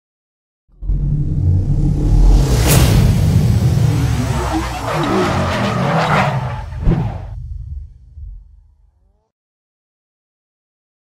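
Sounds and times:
low rumble: 0.7 - 9.3
car tyres squealing and skidding: 3.7 - 7.4.

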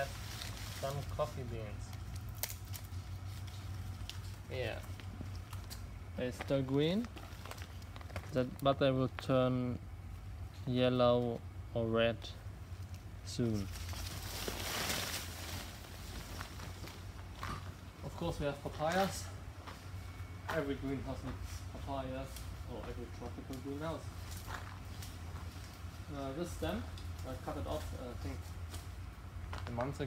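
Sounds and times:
leaves and branches rustling: 0.0 - 11.5, 12.3 - 30.0
steady low hum: 0.0 - 30.0
footsteps on gravel: 24.1 - 25.9.

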